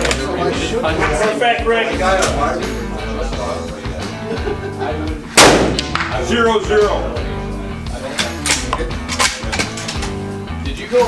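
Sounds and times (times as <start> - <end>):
background music: 0.0 - 11.0
rifle shot with ringing tail: 5.4 - 6.0.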